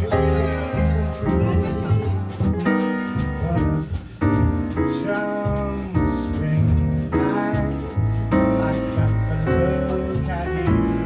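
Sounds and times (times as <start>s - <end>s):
double bass notes: 0.0s - 11.0s
drums and cymbals: 0.0s - 11.0s
piano chords: 0.0s - 11.0s.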